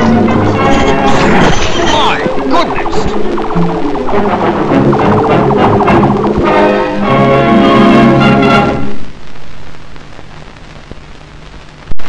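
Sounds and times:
film soundtrack music: 0.0s - 9.1s
soundtrack hiss: 0.0s - 12.0s.

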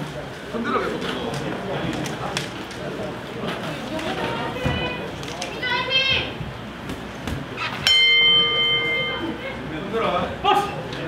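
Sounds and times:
boxing ring bell ringing: 7.8s - 9.4s.

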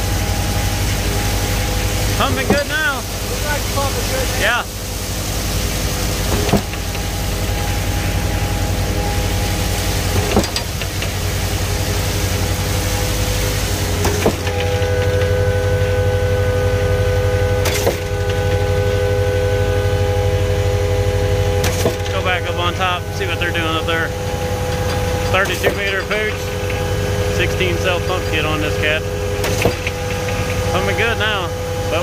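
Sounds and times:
pump stroke clunk: 0.0s - 4.1s, 5.1s - 32.0s
hydraulic whine: 0.0s - 32.0s
pump truck engine drone: 0.0s - 32.0s.

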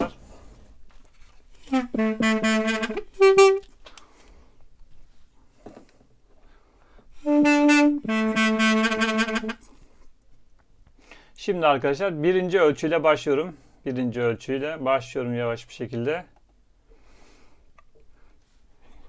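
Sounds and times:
double-reed wind instrument: 1.6s - 3.8s, 7.2s - 9.8s.

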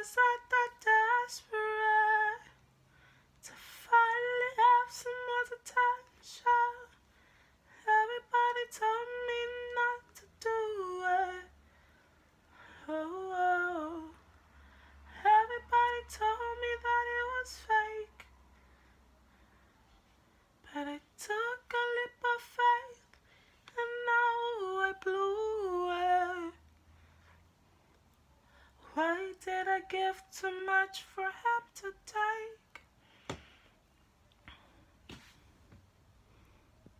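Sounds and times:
woman singing unaccompanied: 0.0s - 2.6s, 3.4s - 7.0s, 7.8s - 11.6s, 12.7s - 14.2s, 15.1s - 18.3s, 20.6s - 26.6s, 28.8s - 32.8s.

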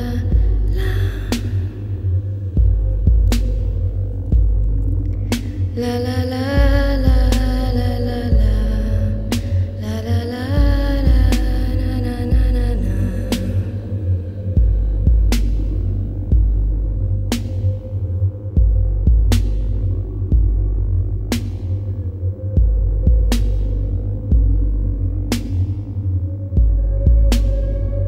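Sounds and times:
electronic music: 0.0s - 28.0s.

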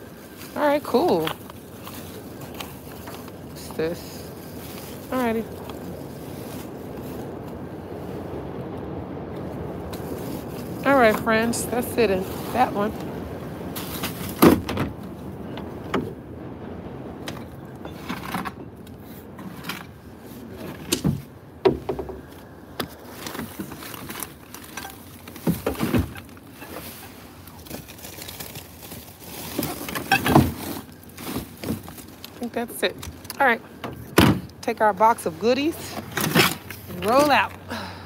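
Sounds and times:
plastic bags rustling: 0.0s - 15.2s, 22.4s - 38.0s
knocks and thumps: 20.8s - 22.9s.

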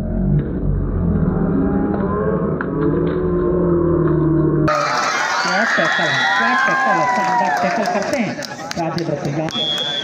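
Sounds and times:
low droning music: 0.0s - 4.7s
crowd shouting: 4.7s - 8.1s.

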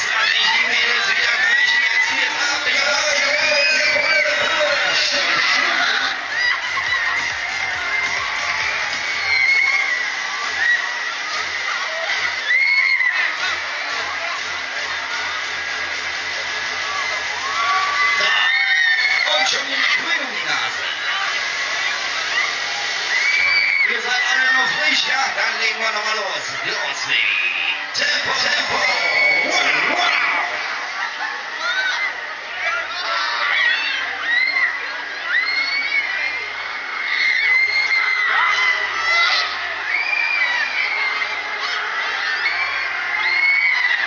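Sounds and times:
music playing: 0.0s - 31.6s
riders screaming and cheering: 0.0s - 44.0s.

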